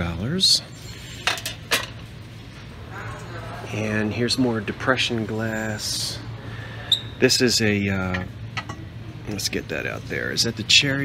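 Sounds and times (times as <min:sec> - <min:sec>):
steady low hum: 0:00.0 - 0:11.0
dishes clinking: 0:08.0 - 0:08.9.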